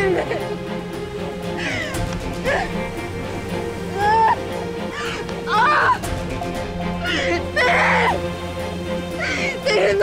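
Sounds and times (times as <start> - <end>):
dramatic background music: 0.0 - 10.0
woman wailing cries: 3.9 - 6.0, 7.0 - 8.2, 9.1 - 10.0.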